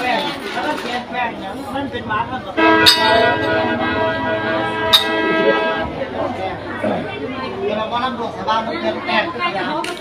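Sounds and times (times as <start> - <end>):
mouth organ sustained chord: 2.6 - 6.2.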